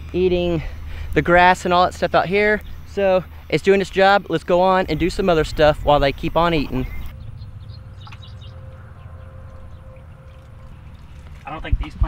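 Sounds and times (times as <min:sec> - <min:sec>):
low steady rumble: 0:00.0 - 0:12.0
high chirps: 0:06.7 - 0:11.2.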